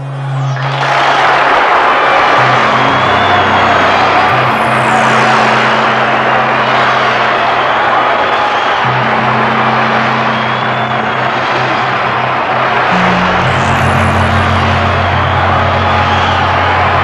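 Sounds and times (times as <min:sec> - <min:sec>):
low synthesizer drones: 0:00.0 - 0:17.0.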